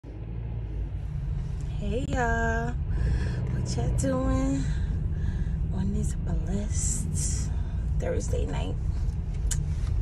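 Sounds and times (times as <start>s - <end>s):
car rumble inside cabin: 0.0s - 10.0s
woman speaking: 1.7s - 2.8s, 3.5s - 4.8s, 5.7s - 8.8s.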